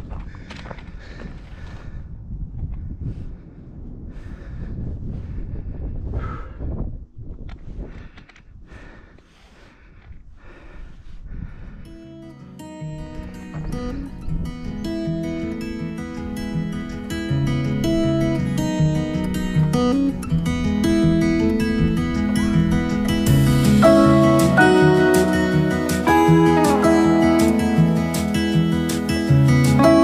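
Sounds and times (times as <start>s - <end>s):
footsteps on stony dirt: 0.0s - 1.9s, 13.0s - 14.5s
wind noise on microphone: 0.0s - 12.0s, 13.0s - 23.9s
acoustic guitar music: 12.0s - 30.0s.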